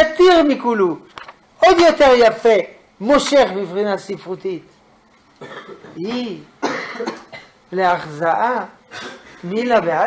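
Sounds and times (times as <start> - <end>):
man clearing his throat: 5.4 - 6.0, 6.6 - 7.6, 8.9 - 9.4
man coughing: 5.4 - 6.0, 6.6 - 7.6, 8.9 - 9.4.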